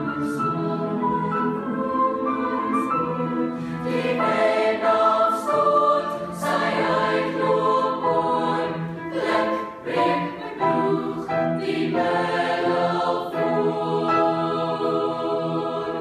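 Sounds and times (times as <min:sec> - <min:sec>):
children's choir singing: 0:00.0 - 0:16.0.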